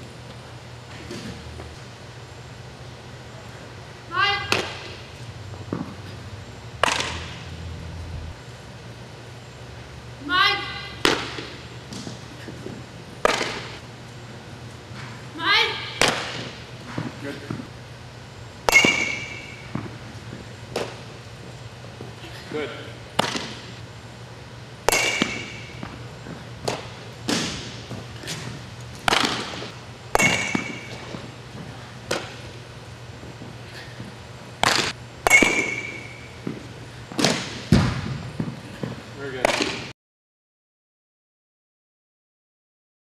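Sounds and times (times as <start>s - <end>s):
softballs batted and caught: 4.4s - 6.2s, 6.8s - 7.6s, 11.0s - 13.8s, 16.0s - 17.6s, 18.6s - 21.2s, 23.1s - 23.7s, 24.8s - 32.6s, 34.0s - 39.9s
metallic bat ping: 18.7s - 19.7s, 24.9s - 25.8s, 30.1s - 31.0s, 35.2s - 36.4s.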